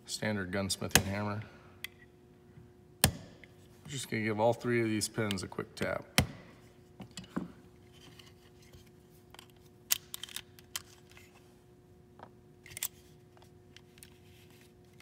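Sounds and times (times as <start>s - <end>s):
small clicks and scrapes of handling: 7.0s - 11.5s, 12.6s - 15.0s.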